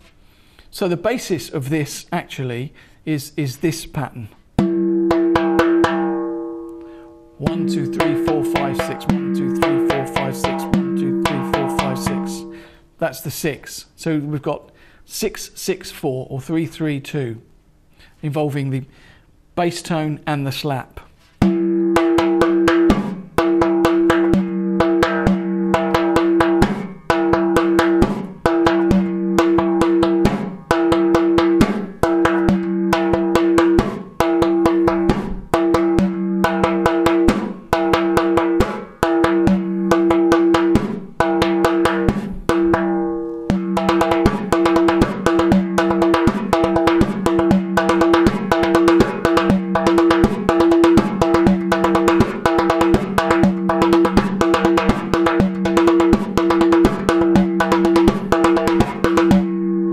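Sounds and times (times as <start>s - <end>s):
frame drum played by hand: 4.6s - 12.6s, 21.4s - 59.6s.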